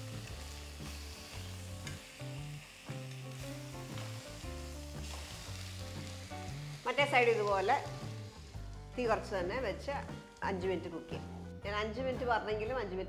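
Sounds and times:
fish frying in oil: 0:00.0 - 0:09.3.

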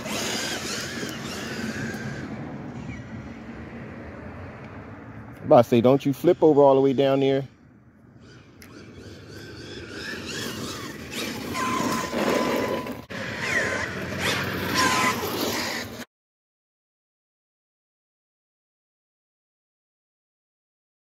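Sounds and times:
electric motor whine: 0:00.0 - 0:02.4, 0:08.2 - 0:15.9
tyre and drivetrain noise: 0:00.0 - 0:07.4, 0:08.1 - 0:16.1.

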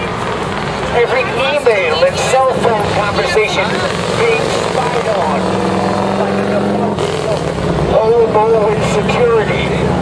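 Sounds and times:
people's voices on street: 0:00.0 - 0:10.0.

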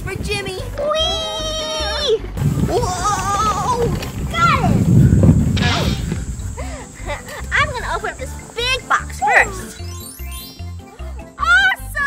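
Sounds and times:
low rumble: 0:02.3 - 0:08.4.

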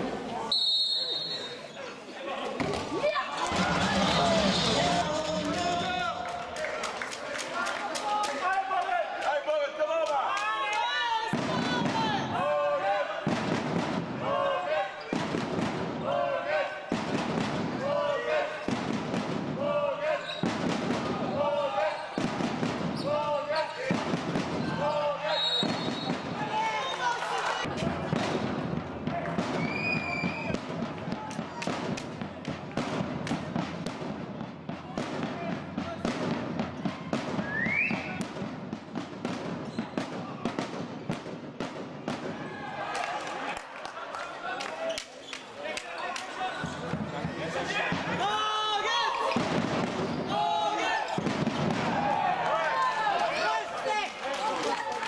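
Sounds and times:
shoes squeaking: 0:44.8 - 0:47.4.

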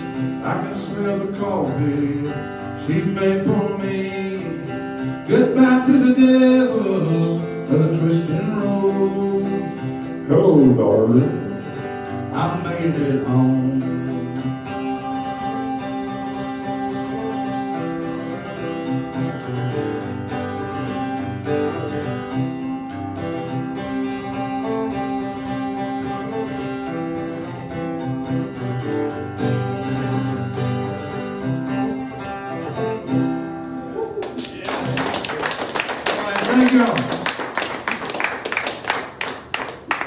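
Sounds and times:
acoustic guitar strummed: 0:00.0 - 0:34.1
audience applause: 0:34.2 - 0:40.0.

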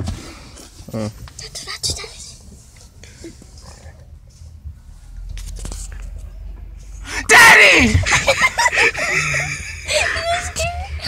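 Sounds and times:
stifled laughter: 0:08.0 - 0:10.6.

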